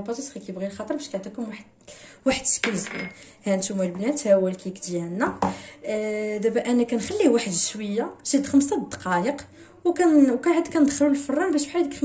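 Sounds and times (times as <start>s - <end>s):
woman talking: 0.0s - 12.0s.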